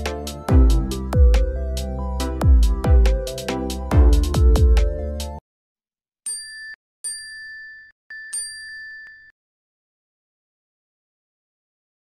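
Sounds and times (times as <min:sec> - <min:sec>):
bell-like ding: 0:06.3 - 0:09.3.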